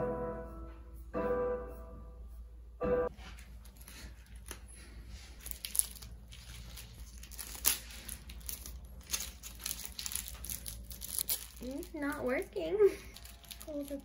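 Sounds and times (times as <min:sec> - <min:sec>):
plastic wrapper crinkling and tearing: 0:05.4 - 0:14.0.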